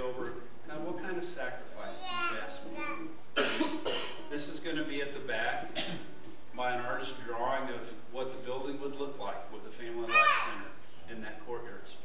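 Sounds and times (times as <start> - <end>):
person coughing: 3.4 - 4.2, 5.8 - 6.1.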